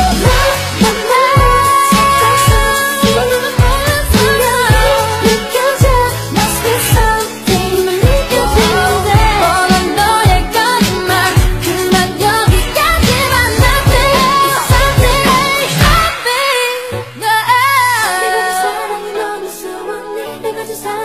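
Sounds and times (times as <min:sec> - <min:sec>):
pop song singing voice: 0:00.0 - 0:21.0
sustained synth tones: 0:08.0 - 0:09.7
bass drum thumps: 0:08.0 - 0:10.5.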